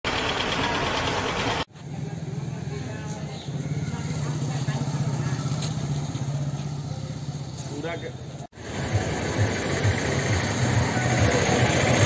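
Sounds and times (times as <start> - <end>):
loud rush of noise: 8.6 - 12.0.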